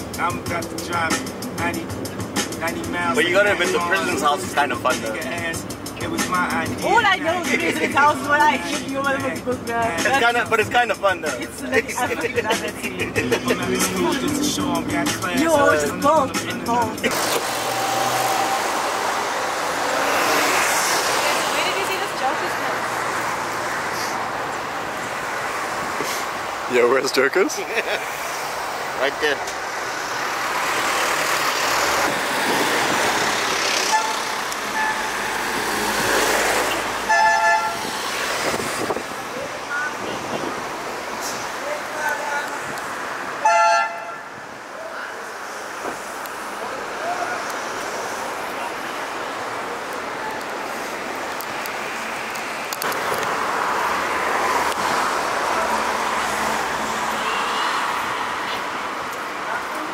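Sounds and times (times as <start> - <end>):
road traffic passing: 0.0 - 59.9
car horn: 33.8 - 35.4, 37.0 - 37.9, 43.4 - 44.4, 57.1 - 58.0.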